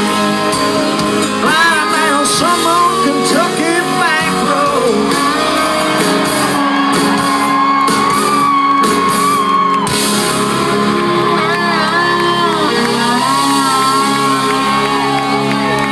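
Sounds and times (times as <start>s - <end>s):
drums: 0.0s - 15.9s
electric guitars: 0.0s - 15.9s
fans shouting and whooping: 0.0s - 15.9s
live country rock band: 0.0s - 15.9s.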